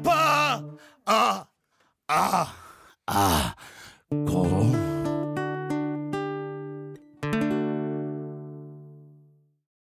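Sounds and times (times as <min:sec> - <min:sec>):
plucked guitar notes and chord: 0:04.1 - 0:09.5.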